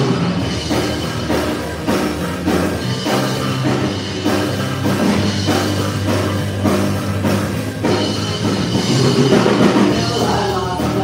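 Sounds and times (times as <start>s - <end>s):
drum kit: 0.0s - 11.0s
live rock band playing: 0.0s - 11.0s.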